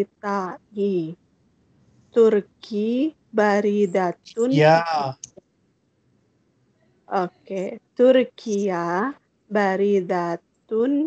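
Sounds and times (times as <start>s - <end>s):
spoken word: 4.3s - 5.3s.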